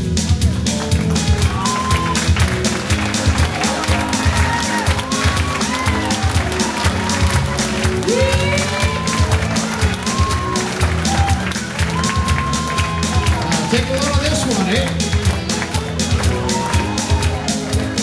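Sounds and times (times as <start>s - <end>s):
country band playing: 0.0s - 18.0s.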